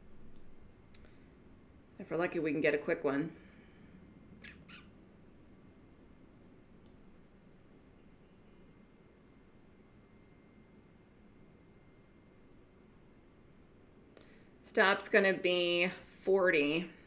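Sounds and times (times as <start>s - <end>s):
faint thin steady tone: 5.3s - 17.0s.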